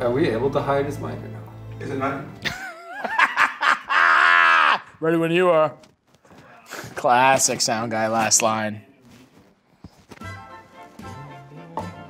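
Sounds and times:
man laughing hard: 0:02.4 - 0:05.0.

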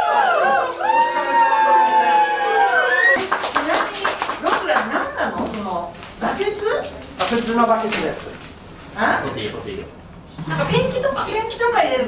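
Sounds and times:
people clapping: 0:00.0 - 0:06.5
people talking: 0:03.5 - 0:08.3, 0:09.0 - 0:12.0.

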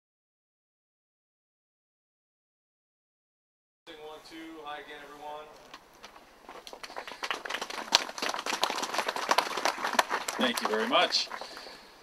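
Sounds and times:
audience applauding: 0:06.5 - 0:11.9.

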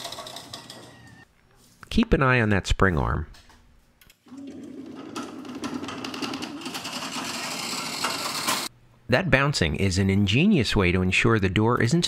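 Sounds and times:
garage door opener buzzing: 0:04.2 - 0:08.7.

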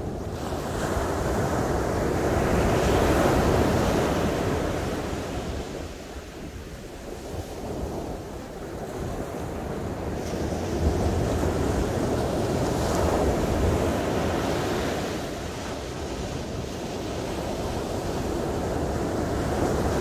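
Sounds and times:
wind rumble on microphone: 0:00.0 - 0:20.0.

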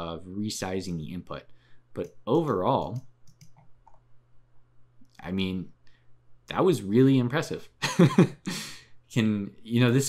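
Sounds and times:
computer mouse clicks: 0:02.8 - 0:04.1.

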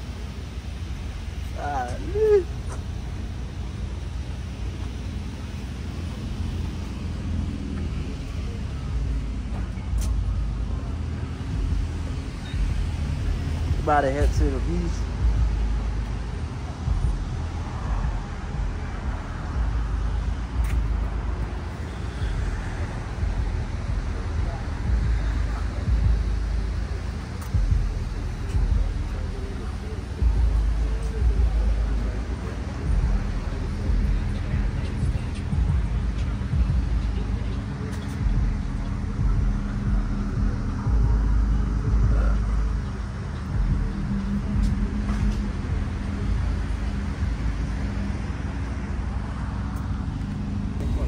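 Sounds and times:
car engine idling: 0:00.0 - 0:51.0.

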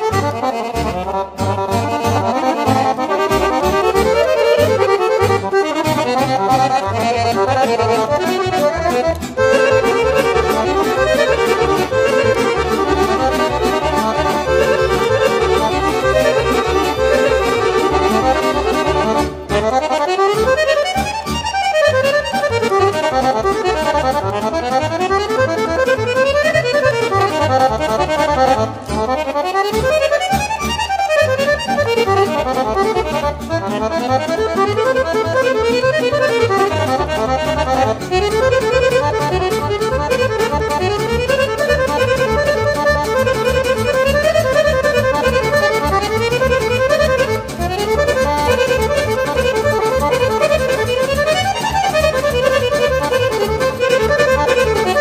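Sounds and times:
accordion playing folk dance tune: 0:00.0 - 0:55.0.

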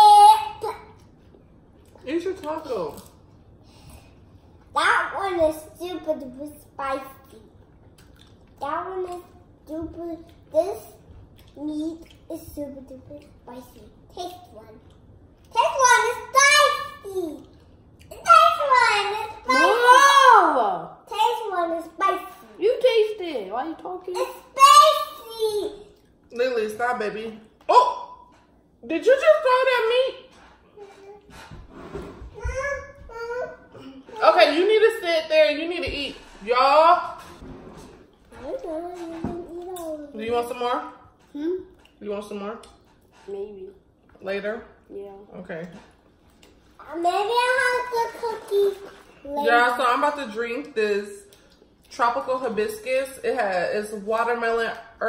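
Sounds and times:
children's voices: 0:24.2 - 0:25.9, 0:46.8 - 0:49.5.

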